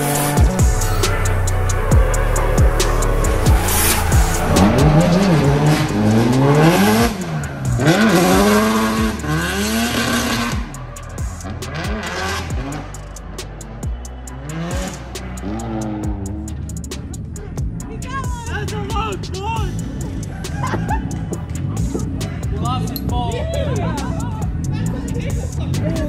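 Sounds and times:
car engine revving: 0:00.0 - 0:17.8
background music with a beat: 0:00.0 - 0:26.0.

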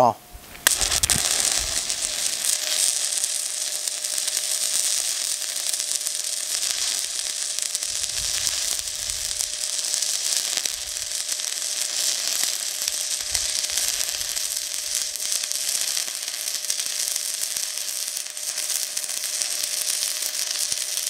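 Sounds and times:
arc welding crackling hiss: 0:00.0 - 0:21.0.

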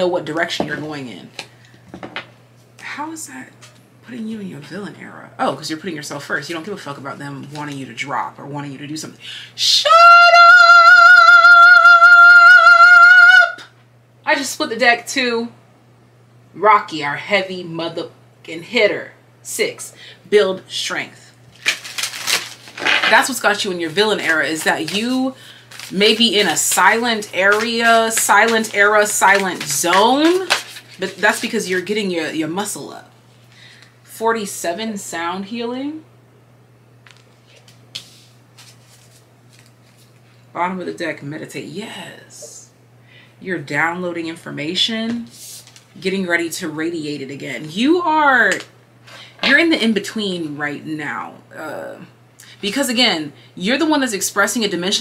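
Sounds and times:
low steady hum: 0:00.0 - 0:55.0
woman singing long high note: 0:09.6 - 0:13.7
cards rustling and tapping: 0:21.6 - 0:31.6, 0:37.0 - 0:40.2.

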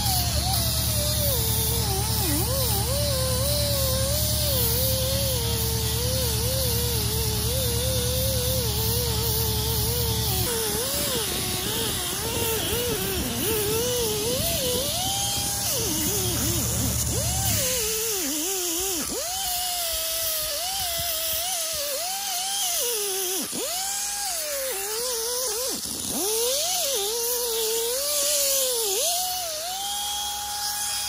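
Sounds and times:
high hiss of air: 0:00.0 - 0:19.3
low hum: 0:00.0 - 0:19.3
die grinder whining on metal: 0:00.0 - 0:31.0.

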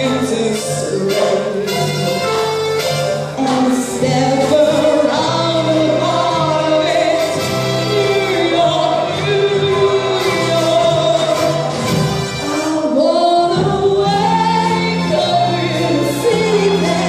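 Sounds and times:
woman singing with vibrato: 0:00.0 - 0:02.6, 0:03.2 - 0:17.0
keyboard and piano accompaniment: 0:00.0 - 0:17.0.

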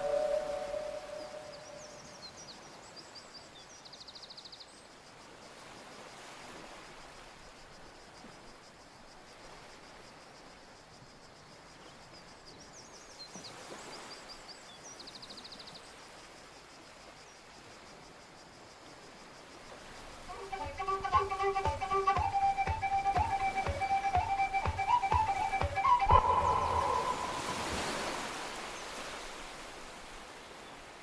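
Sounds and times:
held music note: 0:00.0 - 0:01.9, 0:20.3 - 0:28.1
bird trill: 0:00.0 - 0:02.2, 0:20.3 - 0:28.5
faint outdoor hiss: 0:00.0 - 0:31.0.

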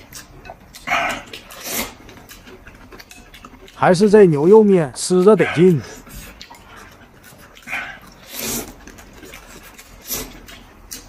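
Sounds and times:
soft eating noises: 0:00.0 - 0:11.0
man slurping soup: 0:07.6 - 0:08.8, 0:10.0 - 0:10.5.

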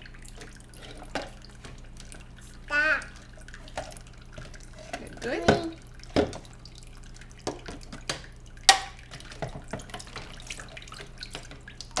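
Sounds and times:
tap running into water: 0:00.0 - 0:12.0.

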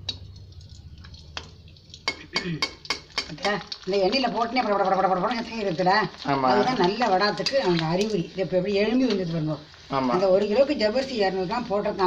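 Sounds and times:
oil sizzling: 0:00.0 - 0:12.0.

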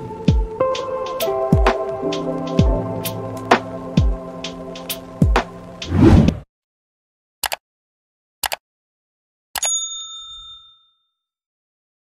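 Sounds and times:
notification bell ding: 0:09.6 - 0:11.1.

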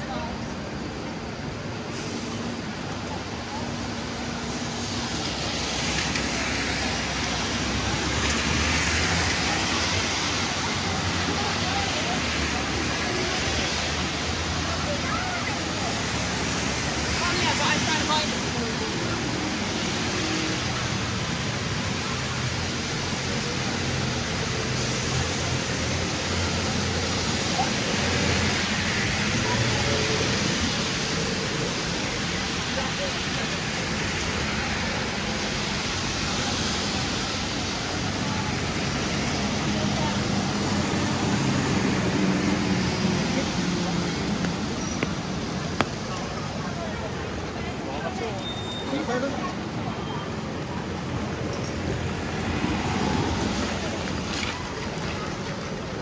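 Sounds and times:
passers-by talking: 0:00.0 - 0:56.0
tyres on wet road: 0:00.0 - 0:56.0
rain hiss: 0:00.3 - 0:56.0.

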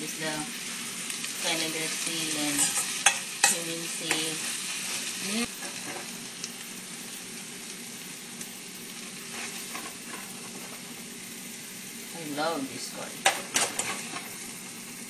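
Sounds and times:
curry sizzling in a pan: 0:00.0 - 0:15.0
spoon stirring and scraping: 0:02.5 - 0:04.3.

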